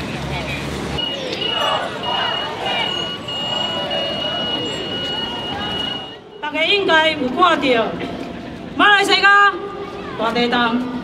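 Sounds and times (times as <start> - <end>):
traffic: 0.0 - 11.0
voices: 0.2 - 7.9
steady high-pitched tone: 1.0 - 6.8.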